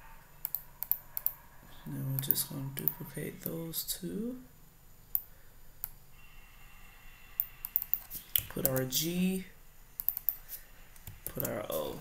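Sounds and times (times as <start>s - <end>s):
computer mouse clicks: 0.4s - 1.4s, 2.2s - 3.6s, 7.4s - 8.9s, 10.0s - 11.7s.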